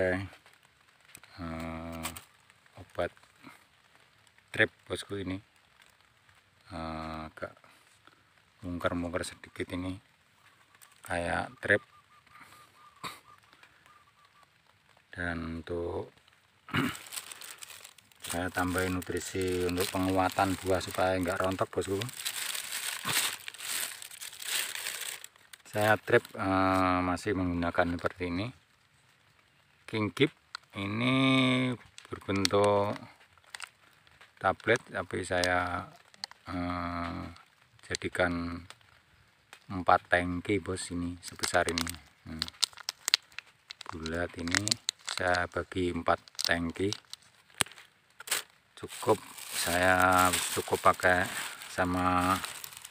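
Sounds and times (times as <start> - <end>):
plastic crinkling and rustling: 0.0 - 12.8, 13.4 - 28.4, 29.8 - 52.9.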